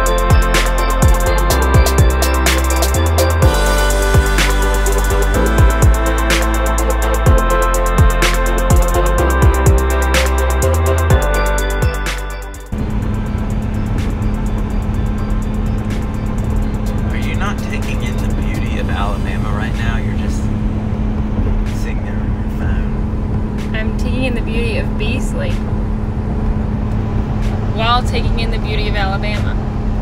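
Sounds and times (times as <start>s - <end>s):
music: 0.0s - 25.9s, 27.2s - 29.6s
road and engine noise in car: 0.0s - 30.0s.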